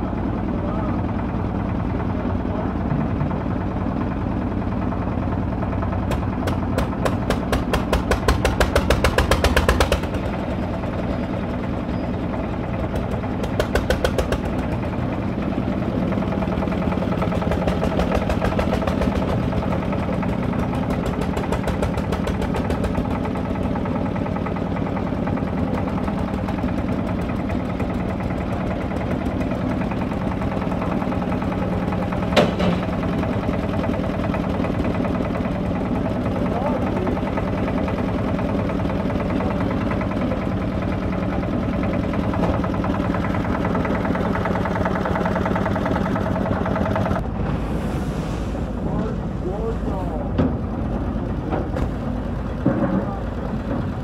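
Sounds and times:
diesel engine exhaust beats: 0.0s - 54.0s
engine hum: 0.0s - 54.0s.

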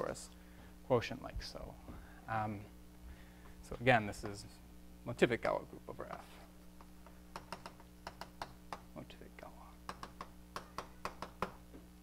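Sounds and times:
steady low hum: 0.0s - 12.0s
chalk tapping on a blackboard: 7.3s - 8.9s, 9.8s - 11.6s.

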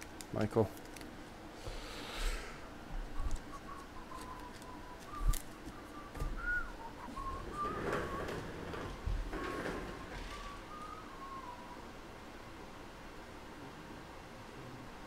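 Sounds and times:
cards rustling: 0.0s - 1.2s, 3.2s - 6.0s
person softly whistling: 3.0s - 8.4s, 10.0s - 11.9s.

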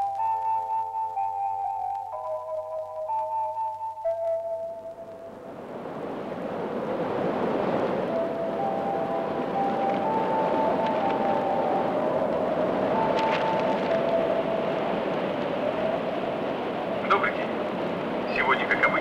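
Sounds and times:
steady rushing noise: 0.0s - 19.0s.

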